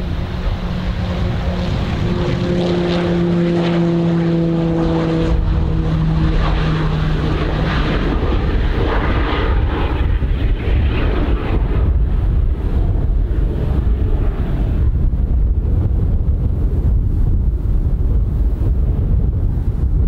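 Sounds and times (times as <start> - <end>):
low rumble: 0.0 - 20.0
turboprop propeller droning: 0.0 - 20.0.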